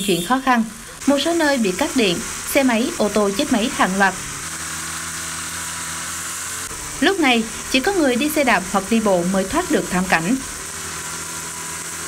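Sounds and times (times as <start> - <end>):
heavy rain pouring: 0.7 - 4.6.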